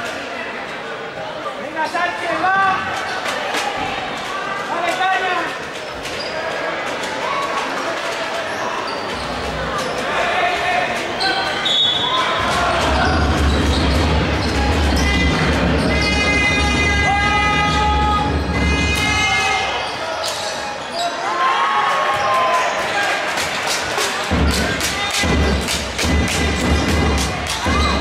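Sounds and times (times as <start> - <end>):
players and crowd calling out: 0.0 - 28.0
loud horn-like drone: 14.9 - 19.6.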